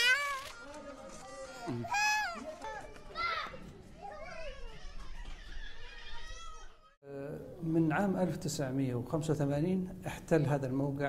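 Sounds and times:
toddler crying loudly: 0:01.3 - 0:02.4.

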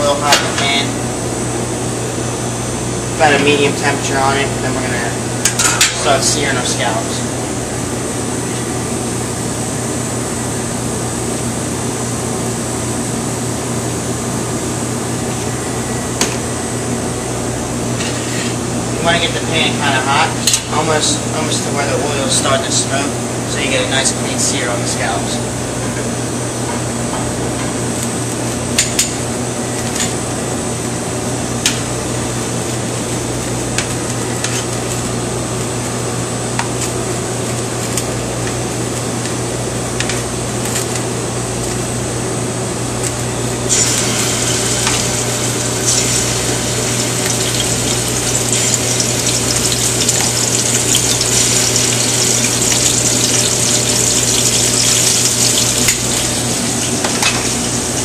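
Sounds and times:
kitchen hum: 0:00.0 - 0:58.0
scallops sizzling in oil: 0:43.7 - 0:58.0.

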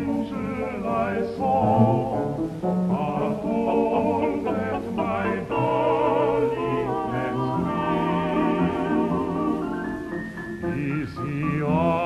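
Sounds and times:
male vocal group singing in harmony: 0:00.0 - 0:09.9, 0:10.6 - 0:12.0.

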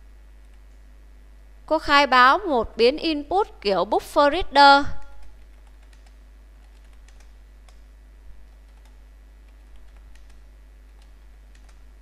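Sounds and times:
steady low hum: 0:00.0 - 0:12.0
computer keyboard keystrokes: 0:05.0 - 0:11.8.

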